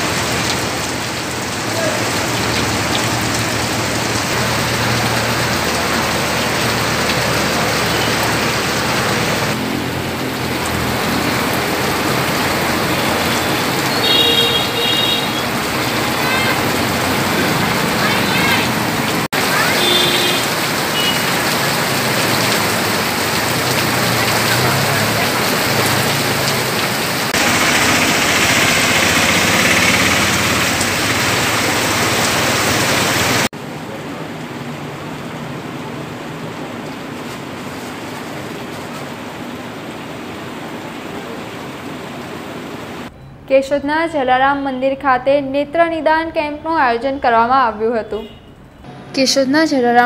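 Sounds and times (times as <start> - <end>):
steady rain falling: 0.0 - 43.1
vehicles splashing through water: 0.0 - 43.3.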